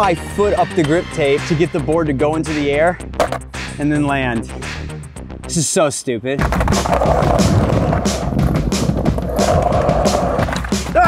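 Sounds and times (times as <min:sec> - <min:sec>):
background music with a beat: 0:00.0 - 0:05.6, 0:06.4 - 0:11.0
skateboard wheels rolling on concrete: 0:06.4 - 0:11.0.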